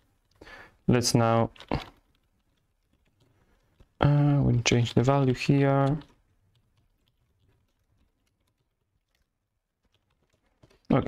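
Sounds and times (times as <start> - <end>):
computer keyboard keystrokes: 4.8 - 11.0.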